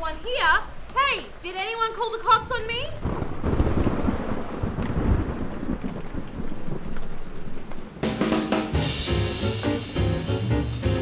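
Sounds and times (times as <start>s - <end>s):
steady rain: 0.0s - 11.0s
rolling thunder rumble: 2.3s - 11.0s.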